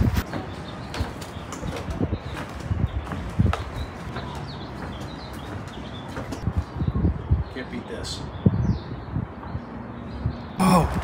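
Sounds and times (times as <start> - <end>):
footsteps on wooden boardwalk: 0.0 - 6.7
birds chirping: 0.0 - 11.0.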